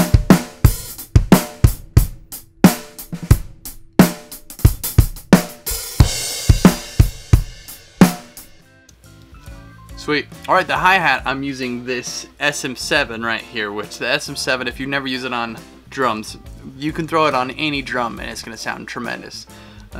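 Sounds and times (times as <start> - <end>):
cymbal crash: 0.0 - 8.6
drum kit beat: 0.0 - 8.7.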